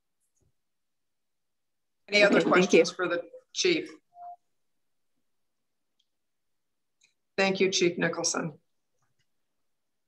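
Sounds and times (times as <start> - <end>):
brief faint tone: 4.1 - 4.5.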